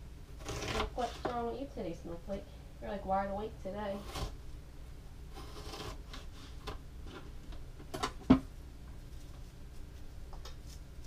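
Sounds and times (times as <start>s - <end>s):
knife slicing onion: 0.4s - 1.5s.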